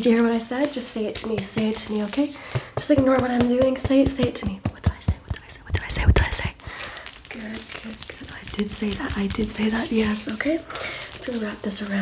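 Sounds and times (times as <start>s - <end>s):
rustling and brushing on microphone: 1.6s - 2.4s, 7.3s - 12.0s
soft whispered speech: 4.6s - 6.6s, 7.3s - 10.6s.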